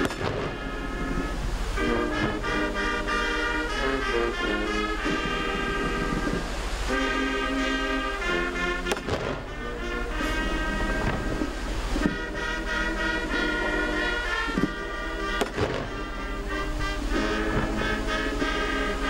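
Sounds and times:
brass band playing slow music: 0.0 - 19.0.

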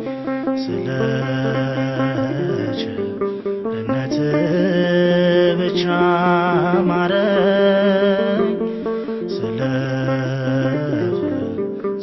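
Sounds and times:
sustained instrumental accompaniment: 0.0 - 12.0.

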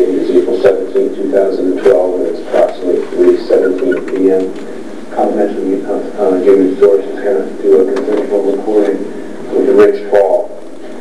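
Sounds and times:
muffled speech: 0.0 - 10.6.

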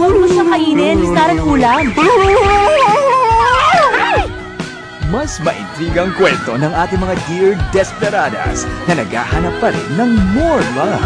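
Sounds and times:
music: 0.0 - 11.0
high-pitched wailing cries: 1.8 - 4.3.

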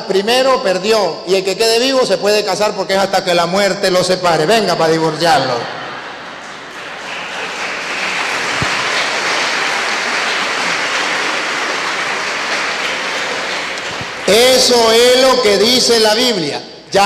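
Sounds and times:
crowd clapping: 5.7 - 15.4.

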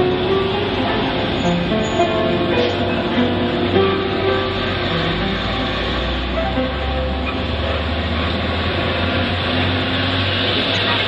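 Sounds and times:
road and traffic noise: 0.0 - 11.0
truck engine driving past: 0.0 - 11.0.

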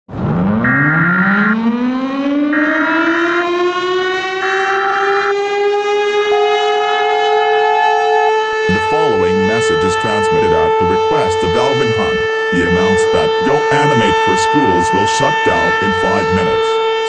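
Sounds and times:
emergency siren wailing: 0.1 - 17.0.

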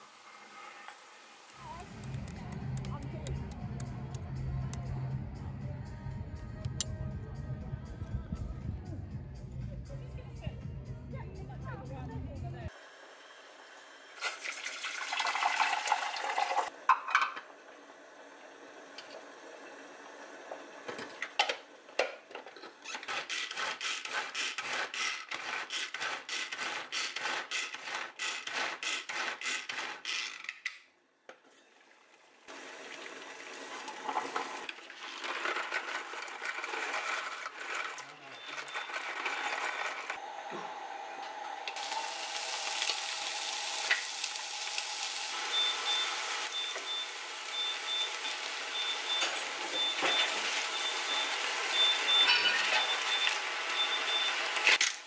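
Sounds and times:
food chopper blades clacking: 22.9 - 30.6, 34.6 - 42.2
pasta rattling into pot: 34.1 - 40.1
vegetables sizzling in frying pan: 41.8 - 54.8
high beep: 48.8 - 54.3.

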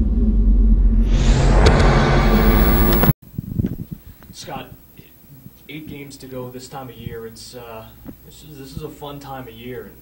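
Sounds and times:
deep rumble: 0.0 - 3.2
steady low tones: 0.0 - 3.2
whoosh: 0.0 - 3.2.

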